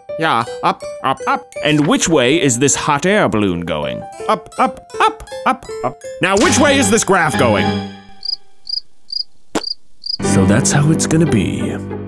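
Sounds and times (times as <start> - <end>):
cricket chirps: 8.1 - 10.2.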